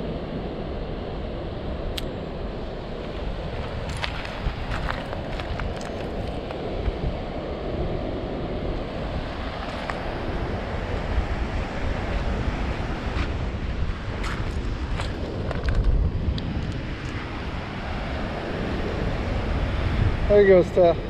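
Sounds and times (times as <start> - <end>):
ocean surf: 0.0 - 21.0
wind buffeting microphone: 0.0 - 21.0.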